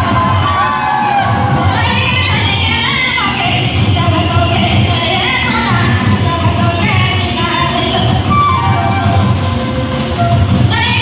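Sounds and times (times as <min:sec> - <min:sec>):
crowd cheering and shouting: 0:00.0 - 0:06.0, 0:07.5 - 0:11.0
live folk dance music: 0:00.0 - 0:11.0.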